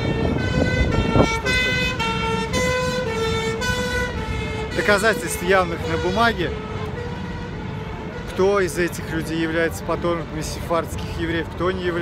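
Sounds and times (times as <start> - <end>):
two-tone emergency siren: 0.0 - 8.1
street noise: 0.0 - 12.0.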